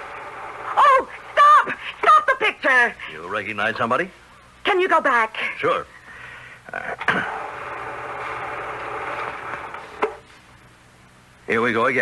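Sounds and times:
film projector whirring: 0:00.0 - 0:03.8, 0:06.7 - 0:10.7
projector stopping click: 0:07.7 - 0:10.2.

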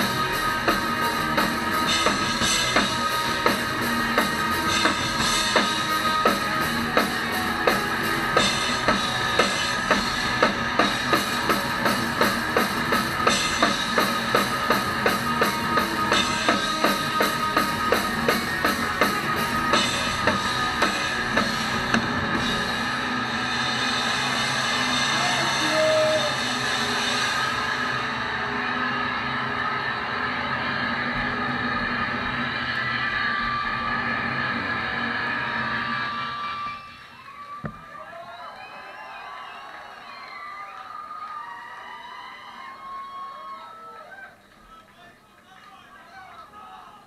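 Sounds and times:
crowd chattering: 0:00.0 - 0:33.8
guitar amp feedback: 0:00.0 - 0:37.0.

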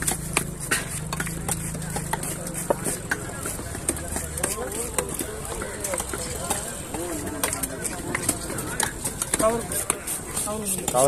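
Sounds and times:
voices in background: 0:00.1 - 0:11.0.

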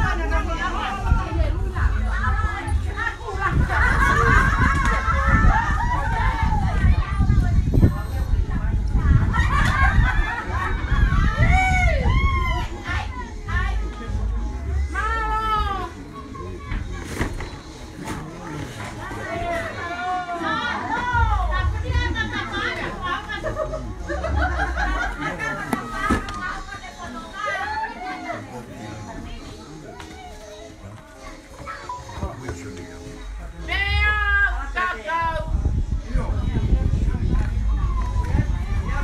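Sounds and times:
people and children talking: 0:00.0 - 0:39.0.

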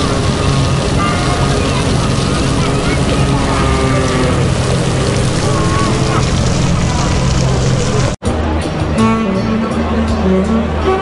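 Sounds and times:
traffic rumble: 0:00.0 - 0:08.6
faint indistinct voices: 0:00.0 - 0:11.0.

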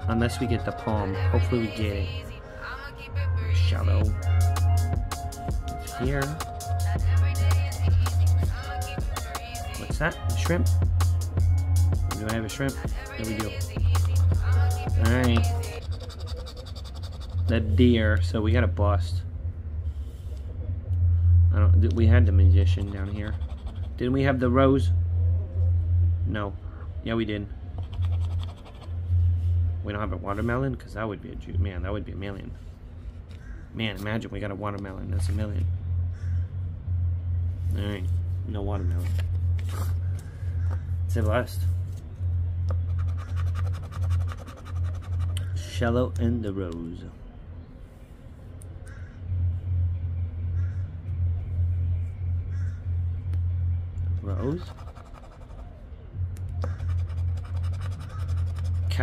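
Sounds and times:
steady low hum: 0:00.0 - 0:59.0
coin scratching ticket: 0:13.0 - 0:17.7, 0:22.6 - 0:24.0, 0:27.8 - 0:29.0, 0:42.8 - 0:45.6, 0:54.6 - 0:55.8, 0:56.6 - 0:59.0.

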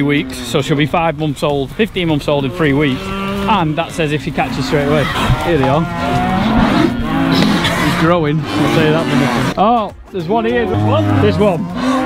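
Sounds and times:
cattle mooing: 0:00.0 - 0:01.0, 0:02.2 - 0:09.6, 0:10.4 - 0:12.0.

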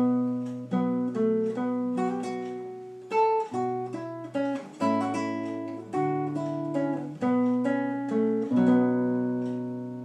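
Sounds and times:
classical guitar fingerstyle: 0:00.0 - 0:10.0.

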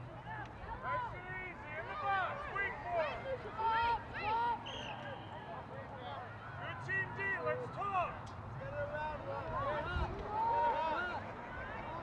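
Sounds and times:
voices shouting and calling out: 0:00.2 - 0:12.0.

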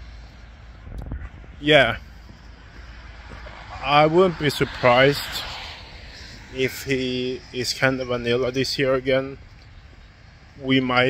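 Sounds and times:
outdoor background noise: 0:00.0 - 0:11.0
man's voice: 0:03.8 - 0:05.5, 0:06.5 - 0:09.4, 0:10.6 - 0:11.0.

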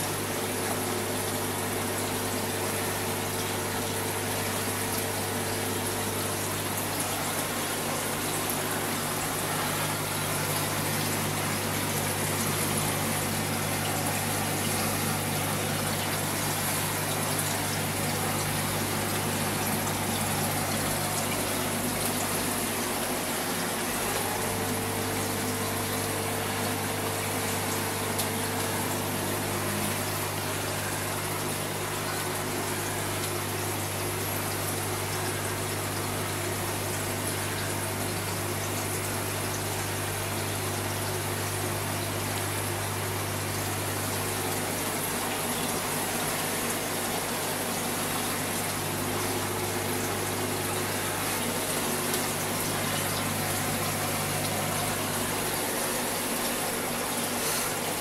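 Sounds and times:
aquarium pump humming: 0:00.0 - 0:58.0
moving water: 0:00.0 - 0:58.0.

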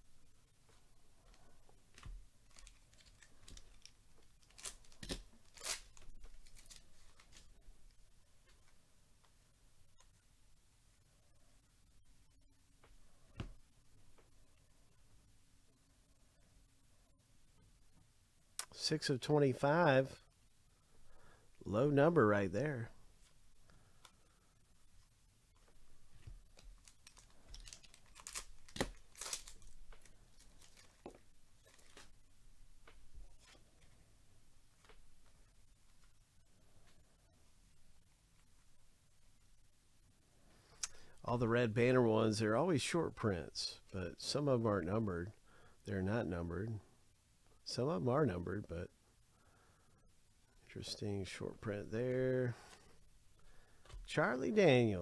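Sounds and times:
cards and foil wrapper rustling: 0:01.9 - 0:07.6, 0:26.2 - 0:32.1.

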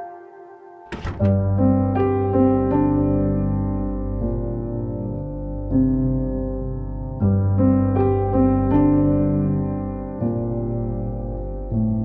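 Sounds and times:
soft held chords: 0:00.0 - 0:12.0
sustained piano-like chords: 0:00.0 - 0:12.0.

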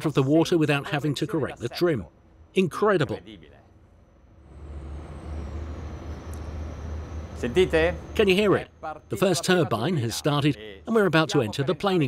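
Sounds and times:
diesel engines droning: 0:03.2 - 0:12.0
turbocharger whine: 0:03.8 - 0:10.6.

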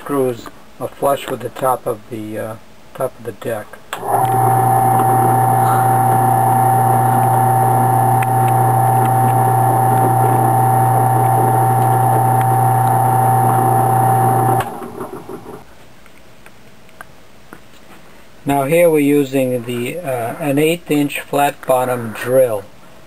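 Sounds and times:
drill press motor humming: 0:04.0 - 0:15.6.

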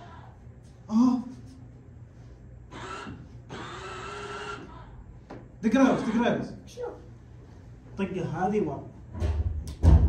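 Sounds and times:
electric scooter motor whining: 0:02.7 - 0:04.8.

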